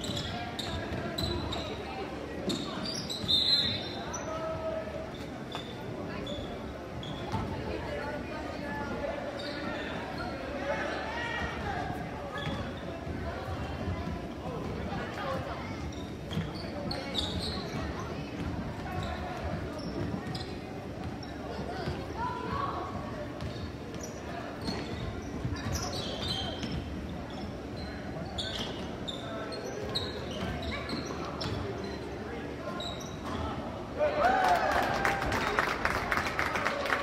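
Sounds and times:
spectators chattering: 0.0s - 37.0s.

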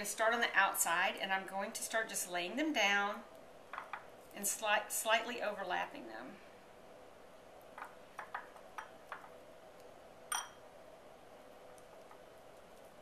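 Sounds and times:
faint steady hum: 0.0s - 13.0s
bright ringing clink: 10.3s - 10.6s.

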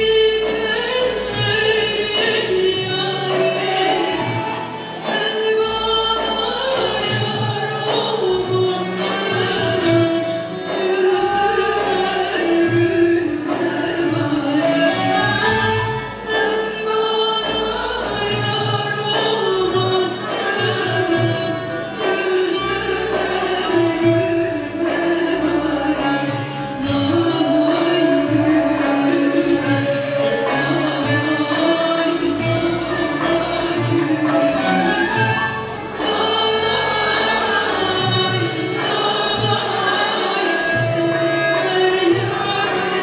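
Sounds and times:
long-necked lute: 0.0s - 43.0s
woman singing: 0.0s - 43.0s
choir singing: 27.0s - 43.0s.

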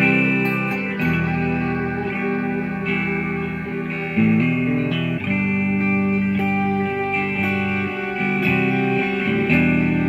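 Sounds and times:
electric guitar ambient blues: 0.0s - 10.0s.

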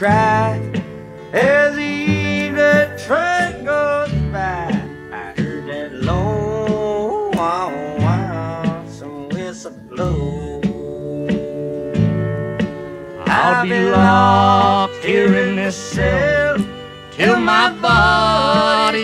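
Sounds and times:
country song with acoustic guitar: 0.0s - 19.0s
sliding lead guitar melody: 0.0s - 19.0s.

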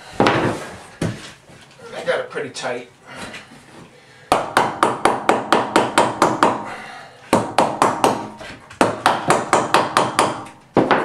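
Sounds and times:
hammer nailing wood: 4.3s - 6.7s, 7.3s - 11.0s.

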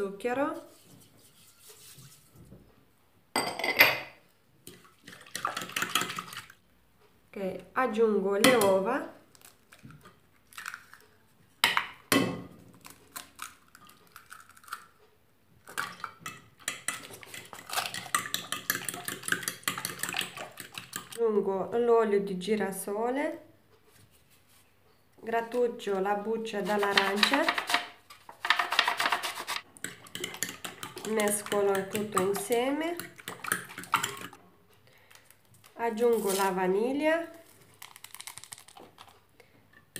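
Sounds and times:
utensil whisking in ceramic bowl: 0.4s - 2.4s, 15.7s - 21.2s, 26.4s - 34.4s
utensil clinking against bowl: 29.8s - 34.4s.

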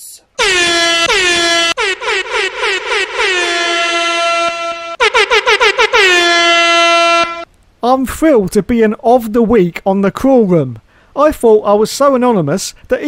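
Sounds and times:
air horn blasts: 0.4s - 7.5s.

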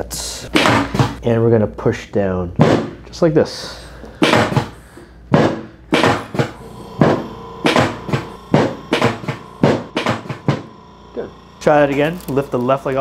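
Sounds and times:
table section knocking down: 4.2s - 10.7s.

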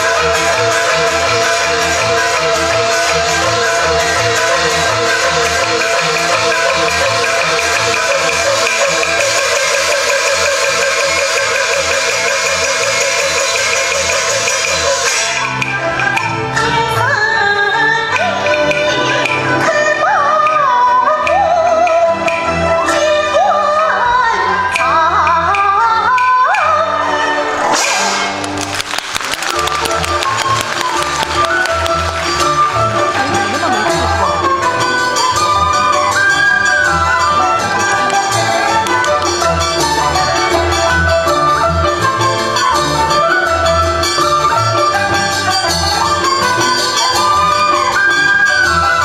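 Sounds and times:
rapid percussion strokes: 0.0s - 16.8s, 27.6s - 49.0s
opera ensemble fast melody: 0.0s - 49.0s
held melodic line: 29.2s - 49.0s.

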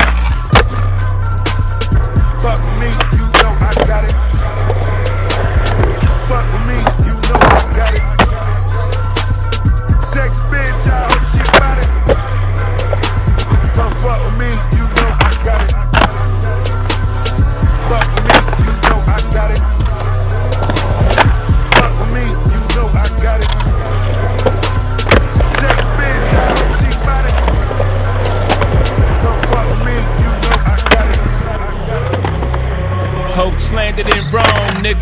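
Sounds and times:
skateboard tail pops and landings: 0.0s - 0.8s
hip hop track with heavy bass: 0.0s - 35.0s
skateboard wheels rolling: 0.0s - 35.0s.

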